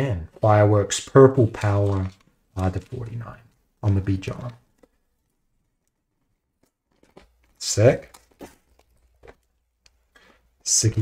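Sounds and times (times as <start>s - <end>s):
plastic sleeve crinkling: 0.4s - 11.0s.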